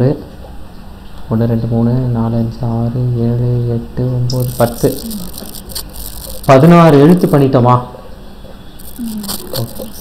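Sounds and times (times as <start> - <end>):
faint man's voice murmur: 8.8 - 10.0.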